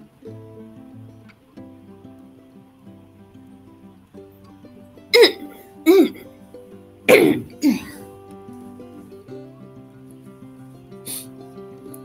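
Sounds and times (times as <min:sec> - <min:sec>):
person coughing: 0:05.2 - 0:06.2, 0:07.1 - 0:08.0.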